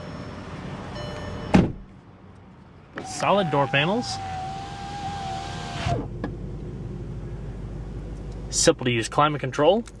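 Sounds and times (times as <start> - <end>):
power window motor whirring: 3.0 - 6.3
low steady hum: 6.0 - 10.0.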